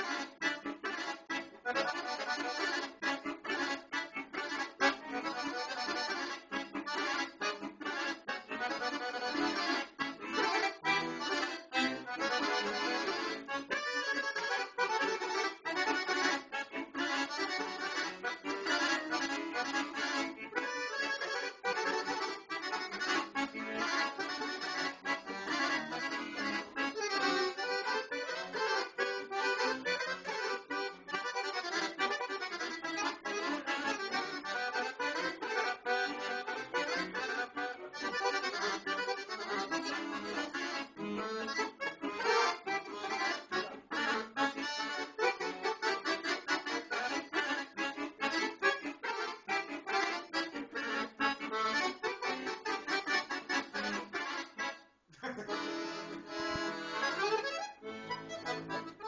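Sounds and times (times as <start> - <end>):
accordion playing fast folk tune: 0.0 - 59.0.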